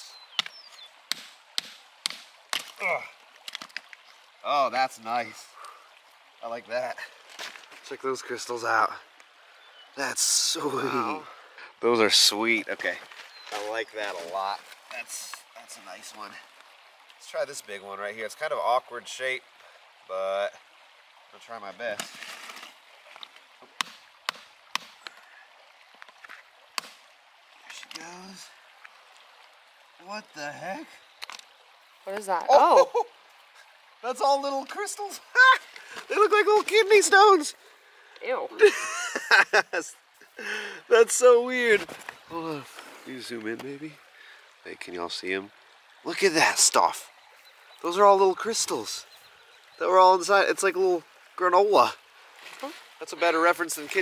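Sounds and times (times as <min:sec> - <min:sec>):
hammer striking rock: 0:00.4 - 0:02.8, 0:23.8 - 0:25.0.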